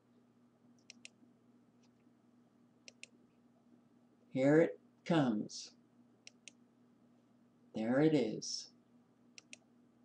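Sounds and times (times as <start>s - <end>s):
computer mouse clicks: 0.8s - 1.2s, 2.8s - 3.2s, 6.2s - 6.6s, 9.4s - 9.7s.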